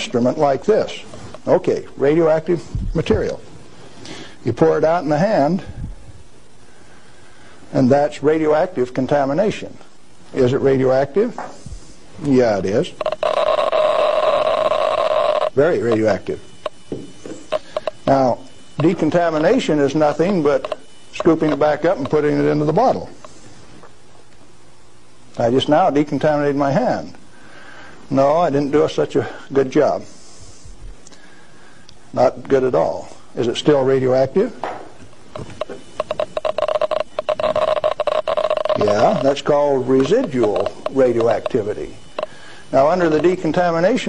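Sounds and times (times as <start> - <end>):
radiation counter buzzing: 0.0 - 44.0
radiation counter clicking: 12.2 - 23.4, 35.1 - 44.0.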